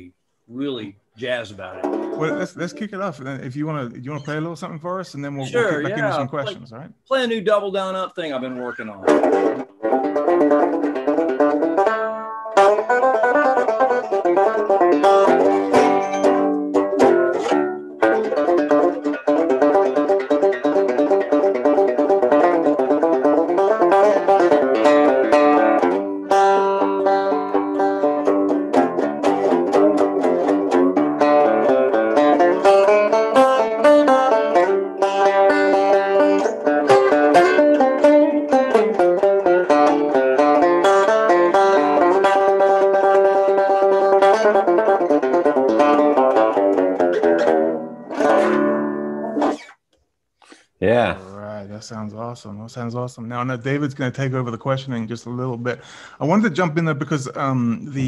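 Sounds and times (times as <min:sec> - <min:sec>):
banjo picking fast notes: 0:00.6 - 0:49.7, 0:50.9 - 0:58.0.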